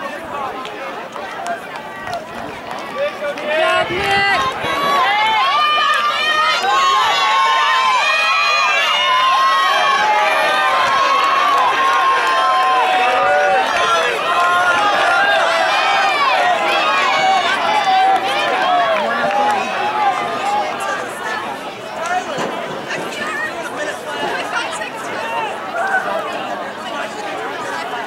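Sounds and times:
spectators yelling and cheering: 0.0s - 28.0s.

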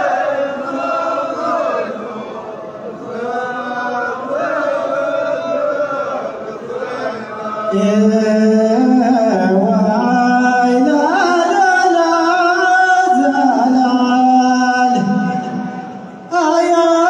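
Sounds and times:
men chanting in unison: 0.0s - 17.0s.

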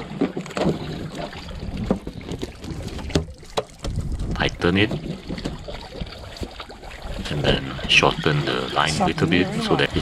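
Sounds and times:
water lapping against boat hull: 0.0s - 10.0s
wind on microphone: 0.8s - 10.0s.

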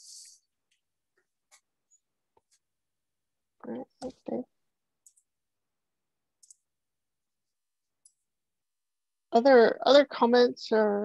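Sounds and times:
faint high-pitched clicks: 5.0s - 5.3s, 6.4s - 6.7s.

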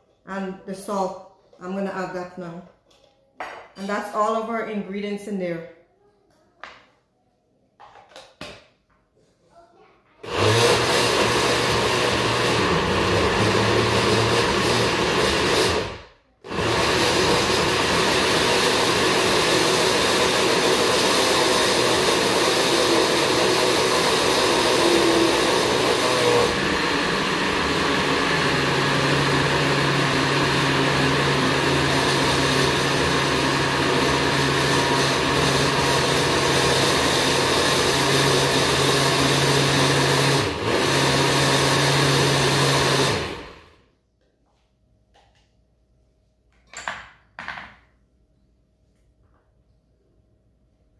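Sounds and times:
blender running: 10.2s - 43.8s.

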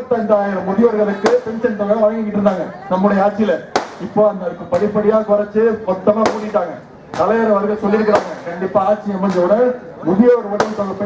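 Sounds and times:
man speaking over loudspeaker: 0.0s - 11.0s
sharp cracks: 3.7s - 4.1s, 6.2s - 7.4s, 8.1s - 8.6s.

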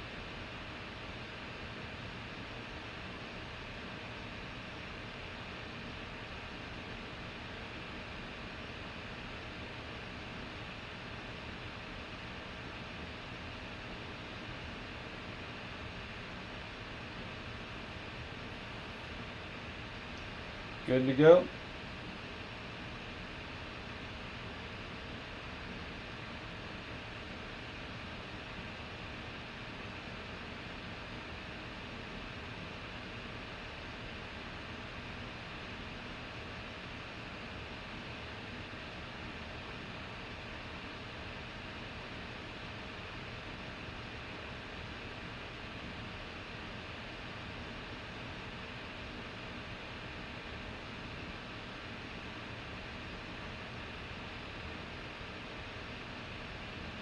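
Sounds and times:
faint constant hum: 0.0s - 57.0s
room tone hiss: 0.0s - 57.0s.

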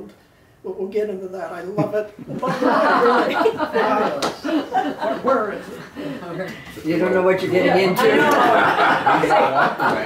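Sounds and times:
people talking and chuckling: 1.8s - 6.8s, 7.6s - 10.0s.

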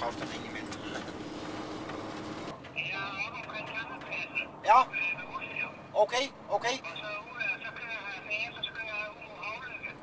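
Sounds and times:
truck engine droning: 0.0s - 10.0s.

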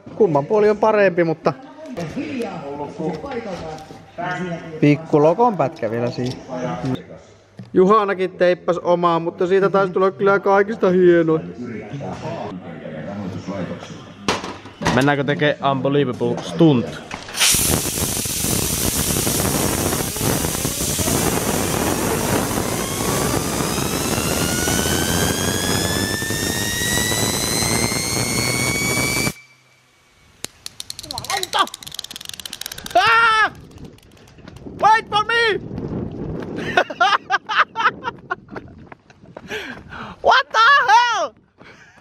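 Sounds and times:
compressed air hissing: 17.2s - 33.0s
bearing whine rising in pitch: 20.1s - 32.6s.

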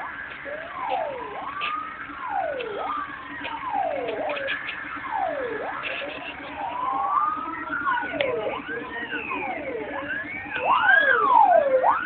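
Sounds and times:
fire engine sirens: 0.0s - 12.0s.

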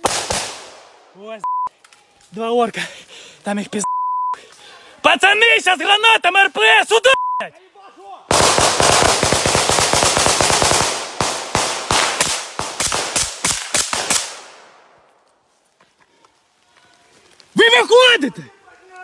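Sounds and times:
automatic rifle fire: 0.0s - 0.9s, 8.3s - 14.6s.

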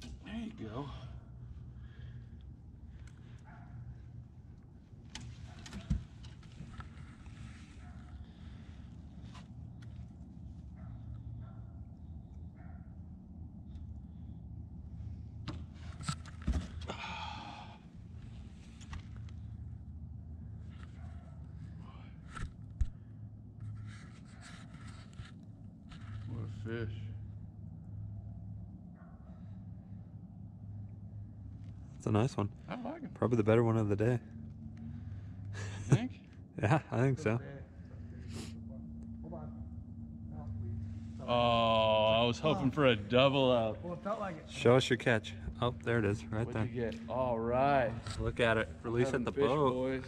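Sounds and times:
steady low hum: 0.0s - 50.0s.

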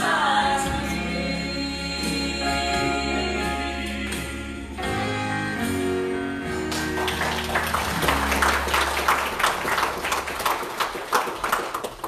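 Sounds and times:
gospel song held chord: 0.0s - 10.1s
congregation clapping: 6.7s - 12.0s.

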